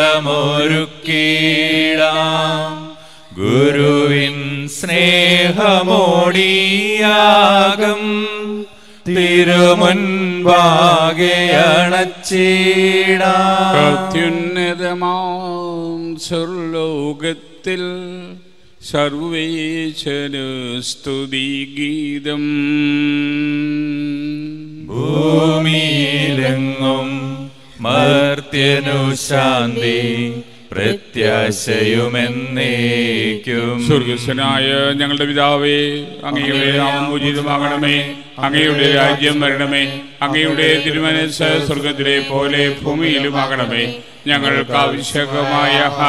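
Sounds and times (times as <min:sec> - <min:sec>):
sung liturgical chant: 0:00.0 - 0:46.0
man breathing: 0:03.0 - 0:03.4, 0:08.7 - 0:09.1
steady held drone note: 0:13.7 - 0:14.7.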